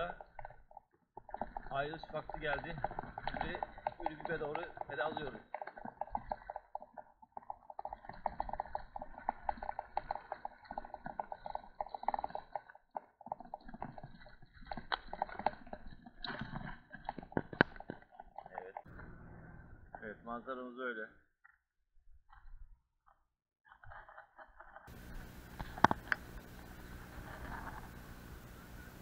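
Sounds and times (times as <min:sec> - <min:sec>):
bicycle clicking and rattling: 0:00.0 - 0:18.9.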